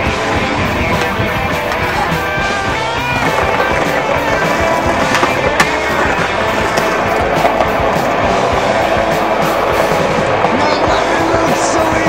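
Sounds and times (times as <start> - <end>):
music soundtrack: 0.0 - 12.0
skateboard clacks: 0.0 - 12.0
skateboard rolling on pavement: 0.0 - 12.0.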